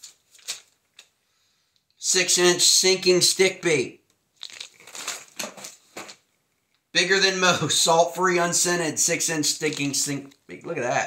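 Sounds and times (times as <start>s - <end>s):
plastic packaging crinkling: 0.0s - 1.2s, 4.3s - 6.8s, 9.6s - 10.4s.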